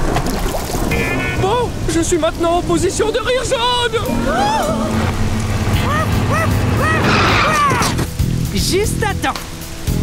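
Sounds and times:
rain: 0.0 - 10.0
cartoon truck engine rumbling: 4.0 - 8.1
rising-then-falling cries: 4.0 - 8.1.

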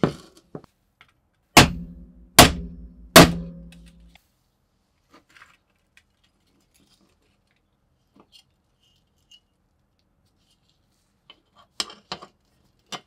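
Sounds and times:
hammer striking metal punch: 1.6 - 4.2.

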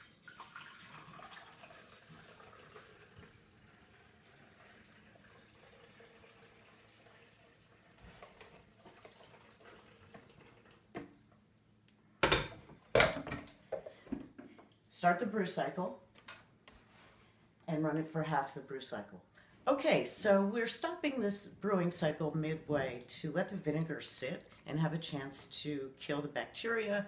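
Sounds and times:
liquid trickling into reservoir: 0.0 - 11.2.

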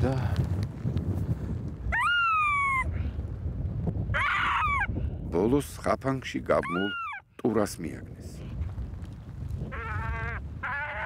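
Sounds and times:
wind noise: 0.0 - 11.0
high-pitched animal cries: 1.9 - 2.9, 4.1 - 4.9, 6.6 - 7.2, 9.6 - 11.0.

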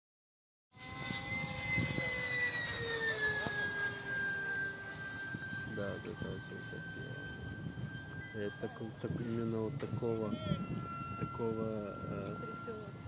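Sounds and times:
model jet high whine: 0.8 - 13.0.

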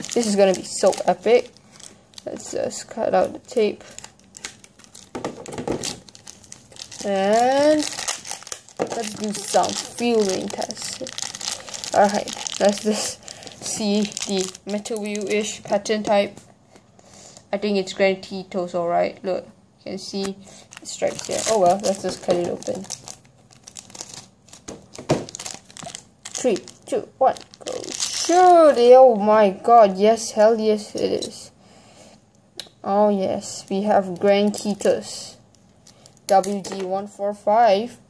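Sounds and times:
packaging crinkling and rustling: 0.0 - 16.2, 20.6 - 29.0.

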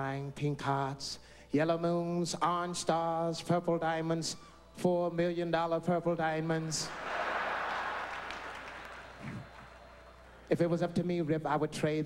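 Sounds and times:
audience laughing: 6.9 - 10.2
audience applauding: 6.9 - 10.5.

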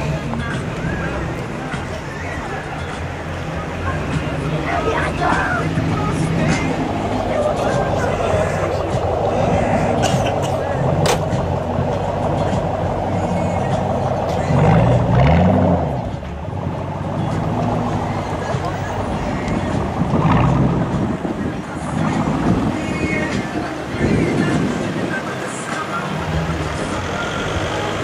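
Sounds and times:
car engine revving: 0.0 - 28.0.

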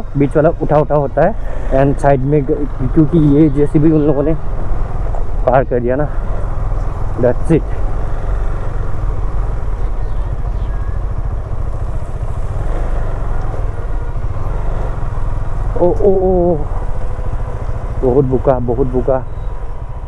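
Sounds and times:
vehicle engine rumbling: 0.0 - 20.0.

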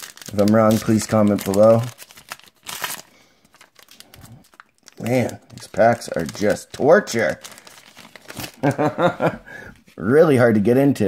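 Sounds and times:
wrapper crinkling: 0.0 - 8.9.

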